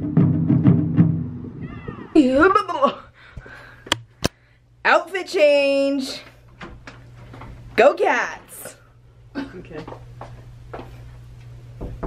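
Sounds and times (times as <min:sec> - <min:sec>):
taiko drums: 0:00.0 - 0:02.1.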